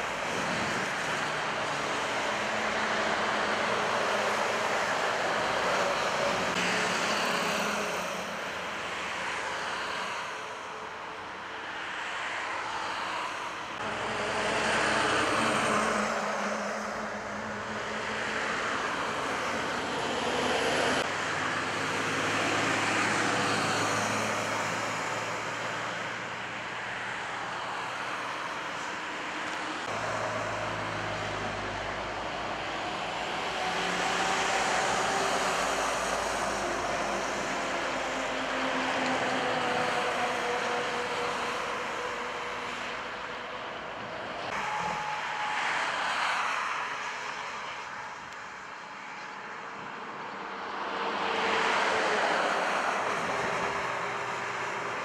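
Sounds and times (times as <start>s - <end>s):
cars and lorries passing: 0.0s - 55.0s
low hum of lorry engines: 0.0s - 55.0s.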